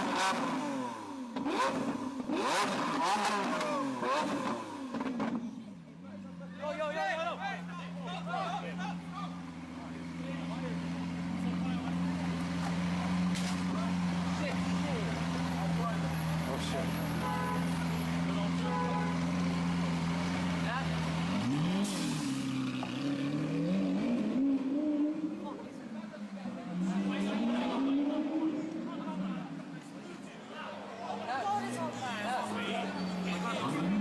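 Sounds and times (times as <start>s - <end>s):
sports car engine idling and revving: 0.0s - 34.0s.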